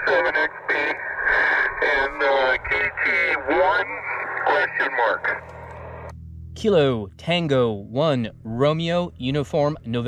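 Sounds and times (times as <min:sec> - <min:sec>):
radio speech: 0:00.0 - 0:05.7
steady low hum: 0:00.0 - 0:10.0.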